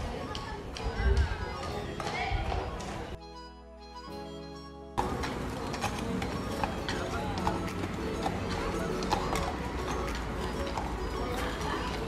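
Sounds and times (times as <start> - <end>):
horse hooves clip-clopping on asphalt: 0.0 - 3.2, 5.0 - 12.0.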